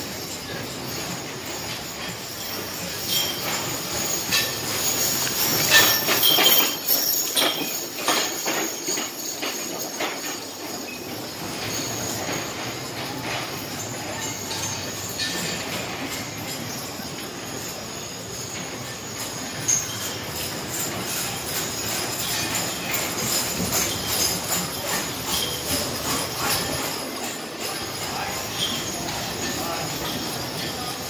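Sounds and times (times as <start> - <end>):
harness jingling: 0.0 - 31.0
wagon wheels rumbling: 0.0 - 31.0.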